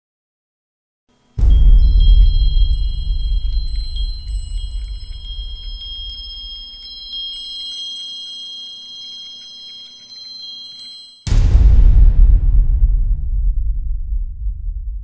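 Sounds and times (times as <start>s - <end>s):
high ringing chime tones: 1.3s - 11.4s
deep low boom: 1.4s - 7.0s, 11.3s - 15.0s.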